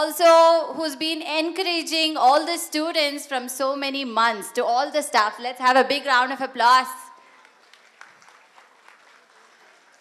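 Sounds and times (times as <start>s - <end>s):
faint audience applause: 7.2s - 10.0s.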